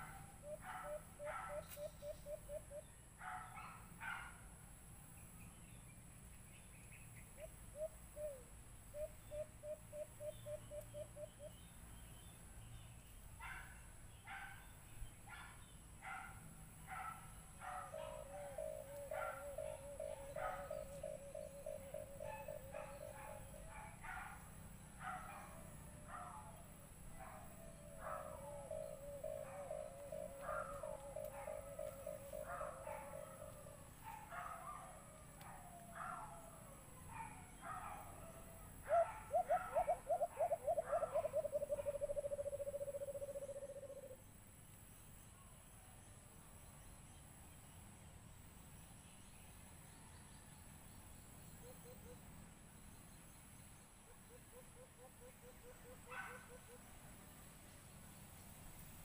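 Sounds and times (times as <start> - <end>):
dove low pulsed cooing: 0.0 - 2.9, 7.4 - 11.6, 17.6 - 24.4, 25.0 - 44.2, 54.2 - 56.9.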